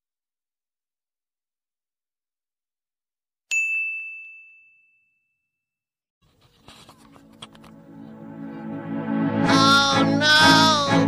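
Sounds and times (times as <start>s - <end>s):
bright bell ding: 3.5s - 5.5s.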